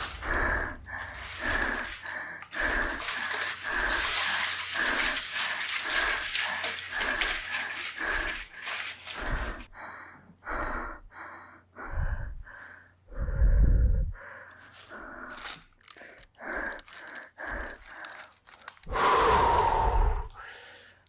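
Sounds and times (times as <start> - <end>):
rapid heavy panting: 0.0 - 13.4.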